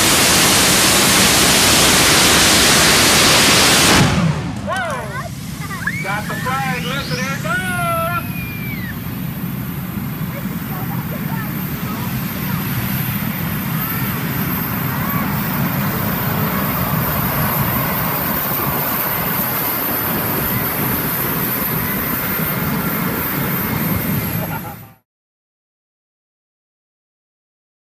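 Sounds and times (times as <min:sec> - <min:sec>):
tractor engine under full load: 0:00.0 - 0:08.6
high whine: 0:00.0 - 0:25.0.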